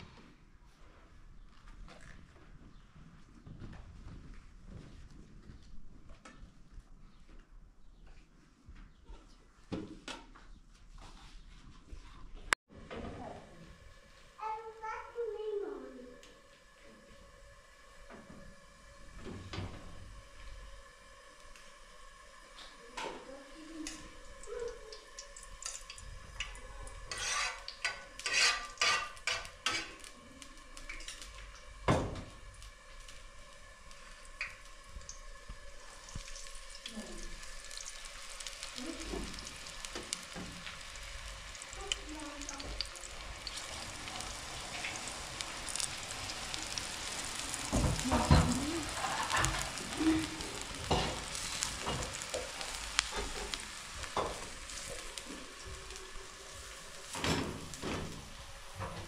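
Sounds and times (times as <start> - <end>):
oil sizzling in frying pan: 13.7 - 59.0
metal spoon scraping metal bowl: 27.0 - 30.2.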